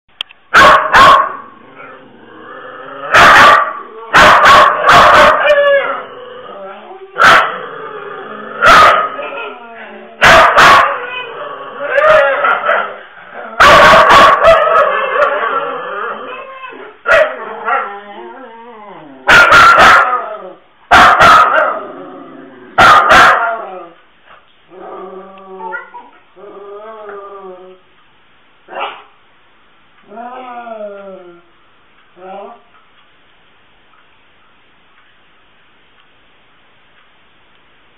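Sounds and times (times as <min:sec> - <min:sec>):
dogs barking: 0:00.5 - 0:01.4, 0:03.1 - 0:06.0, 0:07.2 - 0:07.6, 0:08.6 - 0:09.6, 0:10.2 - 0:11.2, 0:11.9 - 0:13.0, 0:13.6 - 0:15.6, 0:17.1 - 0:17.9, 0:19.2 - 0:20.3, 0:20.9 - 0:21.8, 0:22.8 - 0:23.7, 0:28.7 - 0:29.2
dog whining: 0:08.6 - 0:13.7, 0:14.4 - 0:19.3, 0:24.8 - 0:27.8.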